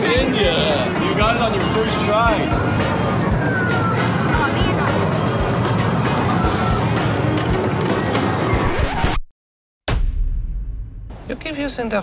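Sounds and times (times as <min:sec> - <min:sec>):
arcade music: 0:00.0 - 0:08.6
arcade machine noise: 0:00.0 - 0:09.1.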